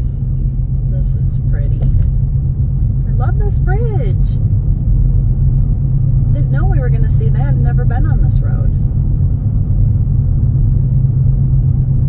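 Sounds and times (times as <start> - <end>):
car driving low rumble: 0.0 - 12.0.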